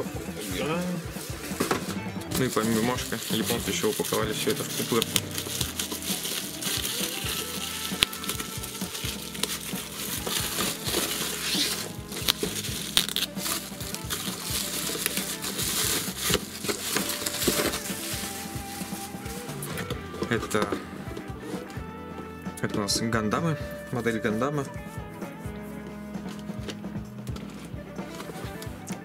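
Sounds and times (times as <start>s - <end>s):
bubble wrap crinkling: 0.0s - 21.8s, 24.8s - 29.0s
background music: 0.0s - 29.0s.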